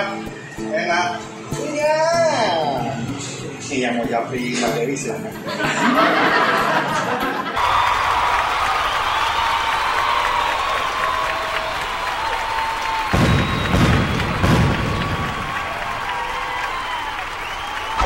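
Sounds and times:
crowd applause and cheering: 5.5s - 18.0s.

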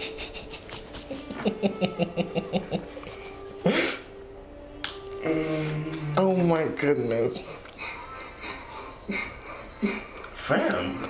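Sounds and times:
sharp snapping: 4.8s - 5.2s.

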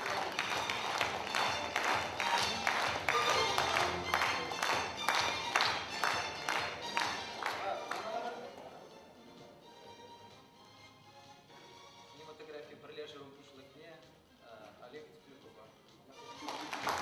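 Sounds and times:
audience clapping in unison: 0.0s - 8.6s, 16.3s - 17.0s
music playing: 0.0s - 17.0s.

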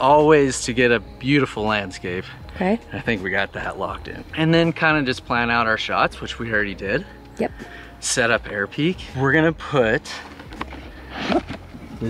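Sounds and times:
brief rustling: 10.1s - 12.0s.

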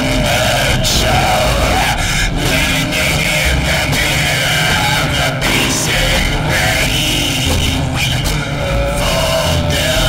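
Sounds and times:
distorted synthesizer noise music: 0.0s - 10.0s
stuttering low end: 0.0s - 10.0s
held synth tone: 5.4s - 8.0s.

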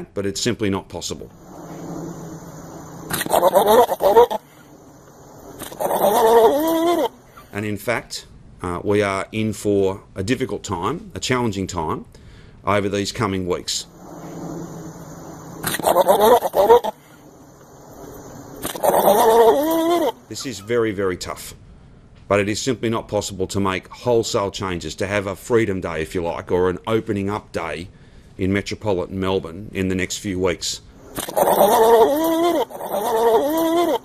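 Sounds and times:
goat bleating: 3.1s - 4.4s, 5.7s - 7.1s, 15.8s - 16.9s, 18.8s - 20.2s, 31.3s - 34.0s.

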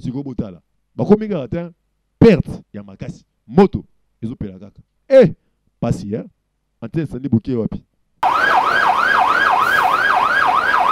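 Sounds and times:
emergency siren yelping: 8.2s - 10.9s.

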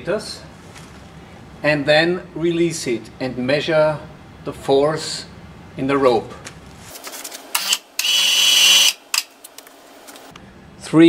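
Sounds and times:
electric motor whine: 7.6s - 9.0s.

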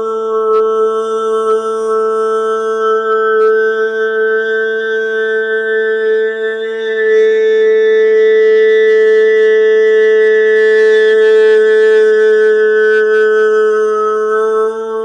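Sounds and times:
man singing a held note: 0.0s - 15.0s.

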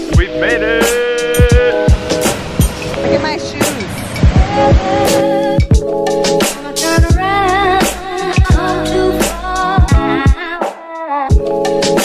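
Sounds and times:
drum hits: 0.0s - 8.7s
synth notes: 0.0s - 9.6s.

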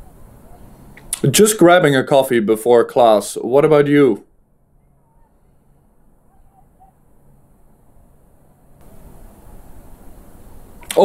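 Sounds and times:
faint steady hiss: 0.0s - 11.0s
man's voice: 1.2s - 4.2s.

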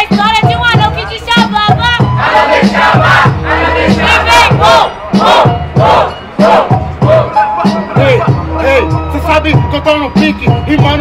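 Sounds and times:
crowd shouting and yelling: 0.1s - 11.0s.

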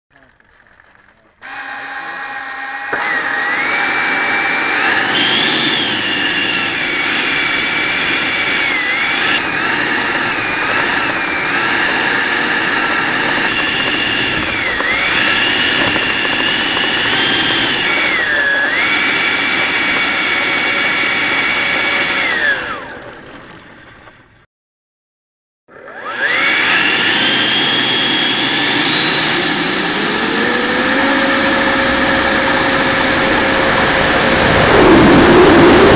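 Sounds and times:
electric ducted fan whine: 1.4s - 24.0s, 25.8s - 35.9s.

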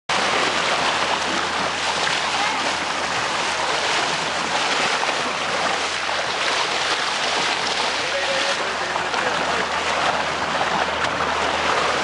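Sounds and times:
sea water rushing: 0.1s - 12.0s
wind: 0.1s - 12.0s.

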